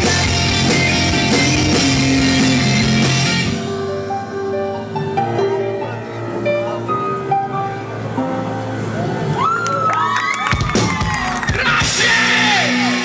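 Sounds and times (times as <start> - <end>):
live band music: 0.0 - 9.0, 10.7 - 13.0
audience whooping and yelling: 8.9 - 13.0
crowd cheering: 9.0 - 13.0.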